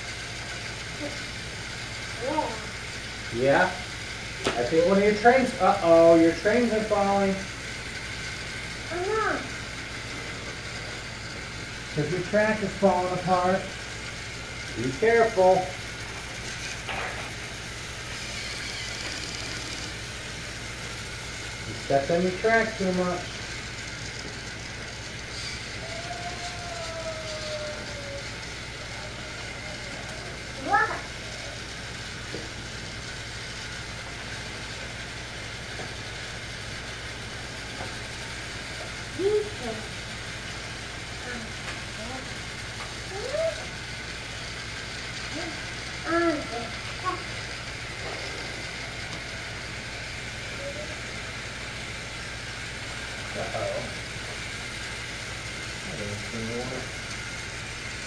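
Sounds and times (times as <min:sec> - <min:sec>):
toy train whirring hum: 0:00.0 - 0:58.0.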